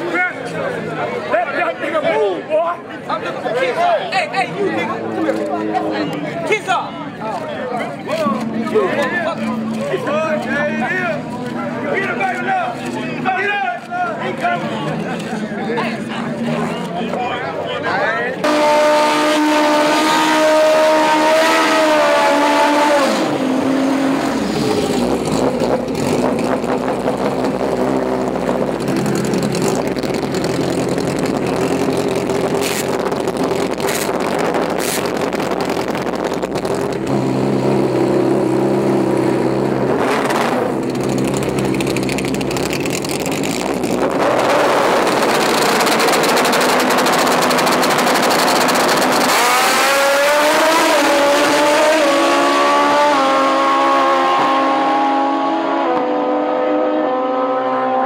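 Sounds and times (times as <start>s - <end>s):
motorcycle engines revving hard: 18.4s - 58.0s.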